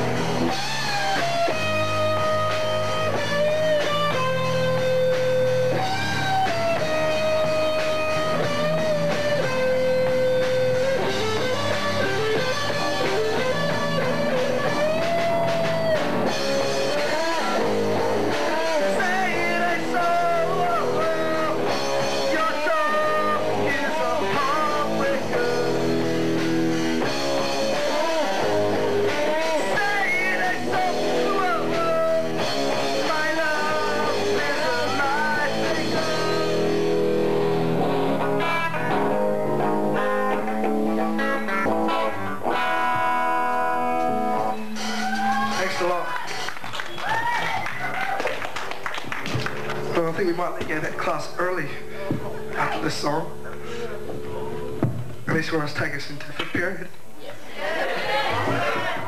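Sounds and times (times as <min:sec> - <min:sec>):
rock band playing: 0:00.0 - 0:54.3
person singing: 0:16.8 - 0:26.0, 0:27.6 - 0:36.9.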